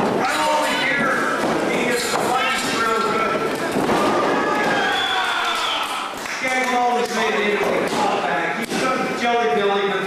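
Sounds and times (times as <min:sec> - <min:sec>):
spectators shouting: 0:03.8 - 0:06.2.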